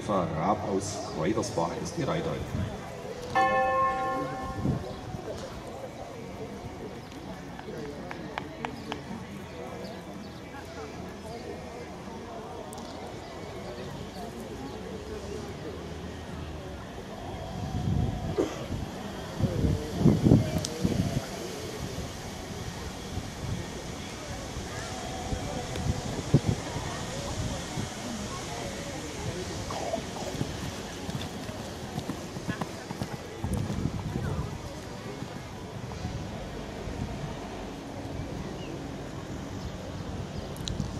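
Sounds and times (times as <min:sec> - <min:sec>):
murmur of people talking: 0:00.0 - 0:40.9
horse hoofbeats on grass: 0:29.6 - 0:35.4.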